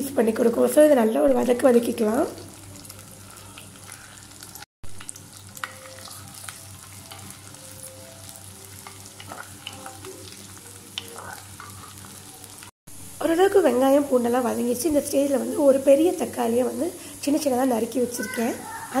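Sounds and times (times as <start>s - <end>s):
food sizzling in oil: 0.1s - 19.0s.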